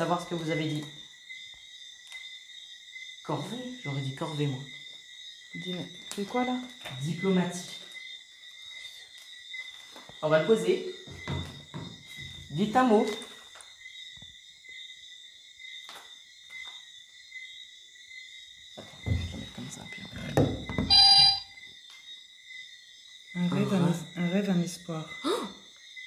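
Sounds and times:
short beep: 20.9 - 21.5
high-pitched electronic whine: 20.9 - 21.6.

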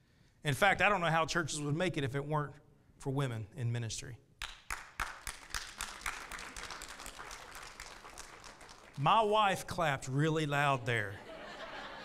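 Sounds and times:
loud single person clapping: 4.4 - 9.1
congregation applauding: 4.4 - 9.9.

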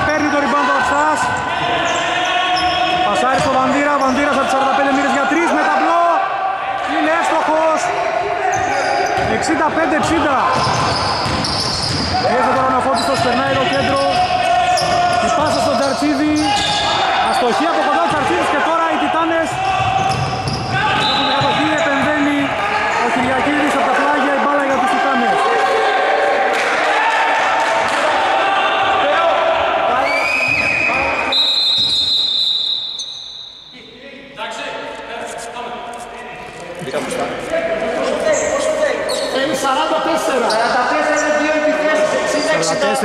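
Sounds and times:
players shouting: 0.0 - 33.0
basketball bouncing: 8.6 - 9.8, 10.4 - 15.6, 19.5 - 22.1
referee's whistle: 13.7 - 17.0, 20.1 - 22.0, 30.0 - 34.0.

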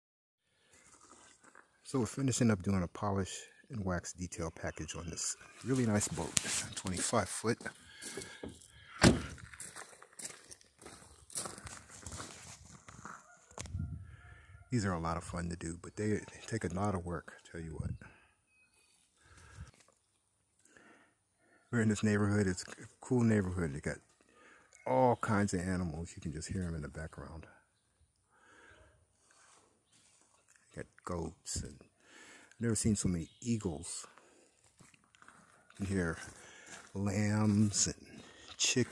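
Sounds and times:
distant farm animal calls: 4.5 - 6.6, 13.0 - 15.0
sharp thump: 9.0 - 9.4.

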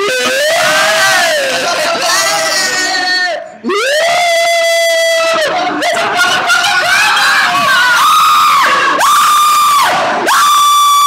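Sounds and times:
riders screaming and yelling: 3.7 - 11.0.

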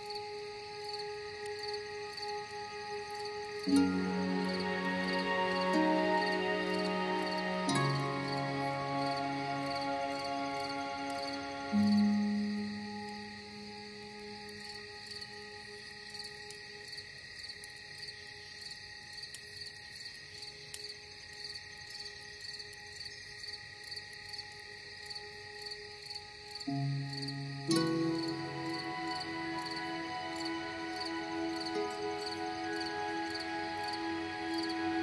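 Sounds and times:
ambient music with held tones: 0.0 - 35.0.

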